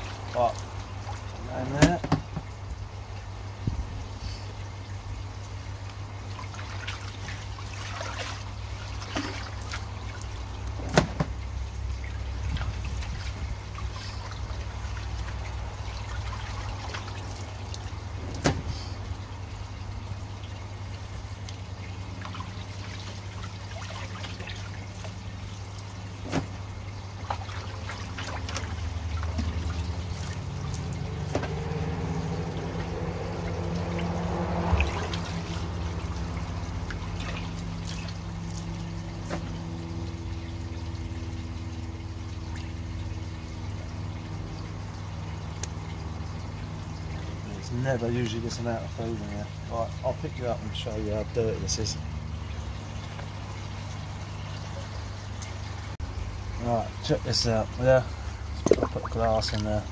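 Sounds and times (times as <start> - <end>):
water sloshing and splashing: 0.0 - 59.9.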